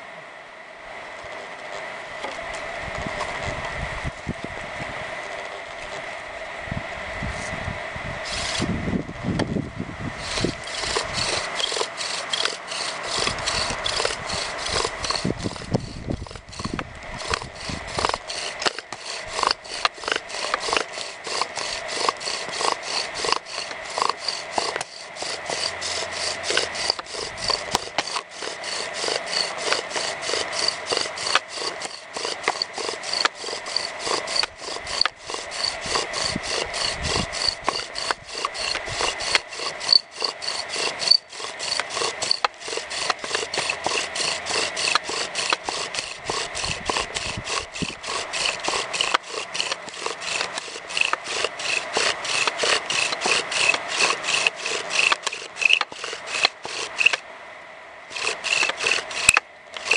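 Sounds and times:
bow drill rasping wood on wood: 8.2s - 8.7s, 10.2s - 57.2s, 58.1s - 59.9s.

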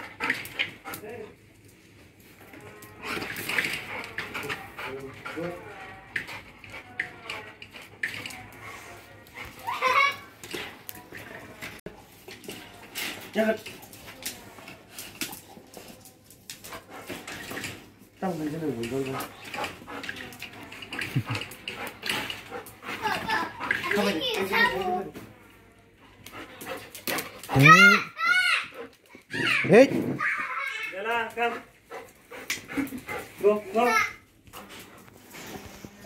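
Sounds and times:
child's voice: 23.0s - 25.2s, 27.5s - 30.9s, 33.7s - 34.2s.

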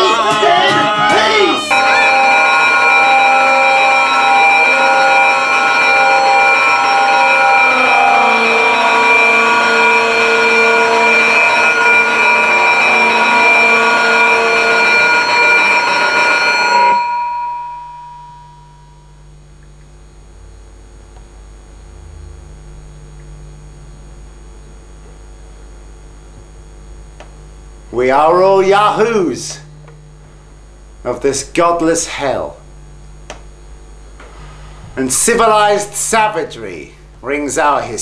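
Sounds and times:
electronic drone of steady tones: 0.0s - 38.0s.

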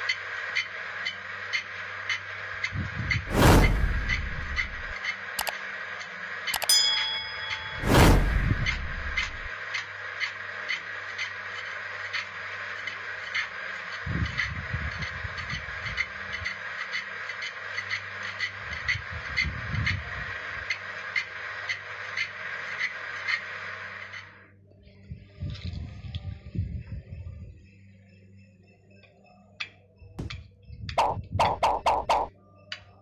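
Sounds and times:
low rumble: 3.1s - 5.0s, 7.6s - 9.5s.

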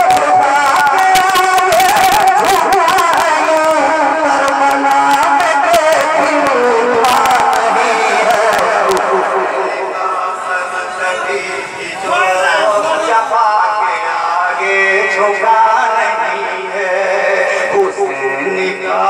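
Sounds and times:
man chanting melodically: 0.0s - 19.0s.

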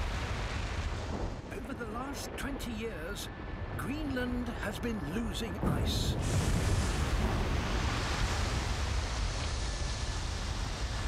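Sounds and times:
deep rumble of collapsing ice: 5.6s - 11.0s
hiss of falling ice and spray: 6.2s - 11.0s.

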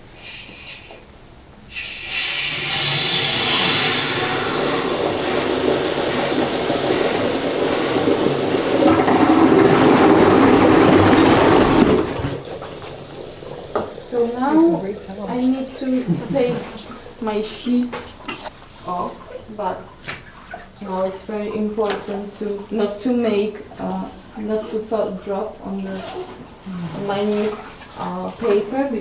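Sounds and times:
short burst of noise: 1.7s - 12.3s
water draining through mesh: 2.2s - 29.0s.

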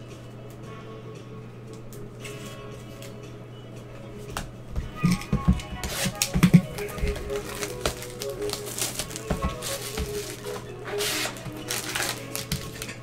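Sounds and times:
quiet background music: 0.0s - 13.0s.

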